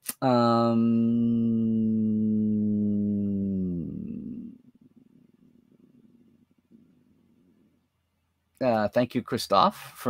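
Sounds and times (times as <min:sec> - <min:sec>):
man humming hesitation: 0:00.1 - 0:04.6.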